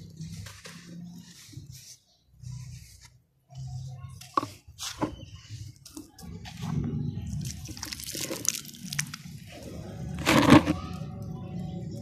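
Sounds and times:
wet block crumbling: 7.4 - 9.4.

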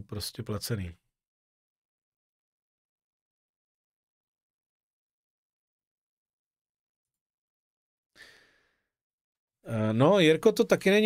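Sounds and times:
man sighing exhale: 8.2 - 8.8.

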